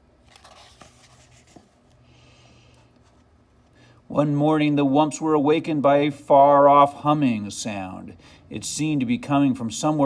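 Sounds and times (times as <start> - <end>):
book pages rubbing and rustling: 0.2 - 1.9.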